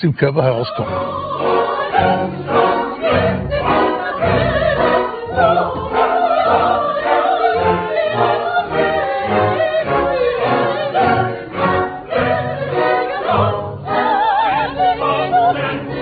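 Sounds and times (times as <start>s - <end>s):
opera chorus singing: 0.3s - 16.0s.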